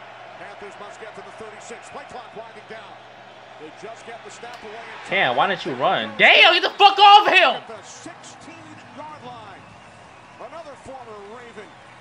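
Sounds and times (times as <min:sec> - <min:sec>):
football commentary from tv: 0:00.0 - 0:12.0.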